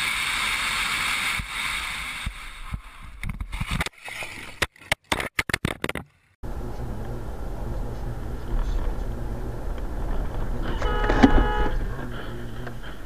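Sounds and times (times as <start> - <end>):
car rumble on the road: 6.4 - 13.0
car horn: 10.5 - 12.3.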